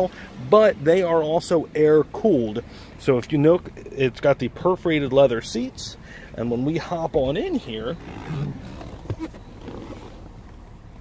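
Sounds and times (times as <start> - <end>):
rustling and handling noise: 7.9 - 11.0.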